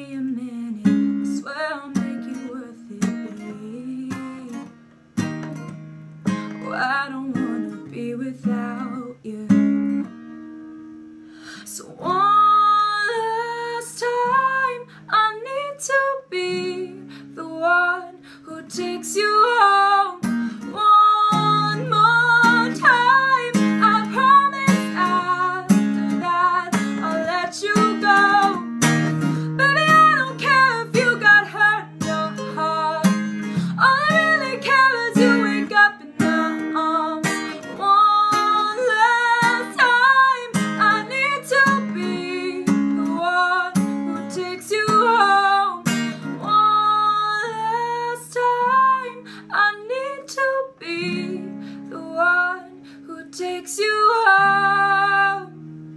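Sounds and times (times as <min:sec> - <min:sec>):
woman singing a pop ballad: 0:00.0 - 0:04.7, 0:06.6 - 0:10.1, 0:11.4 - 0:55.6
acoustic guitar strumming: 0:00.5 - 0:55.9.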